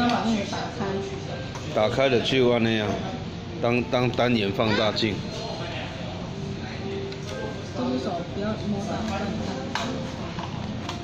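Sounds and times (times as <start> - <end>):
restaurant background noise: 0.0 - 11.0.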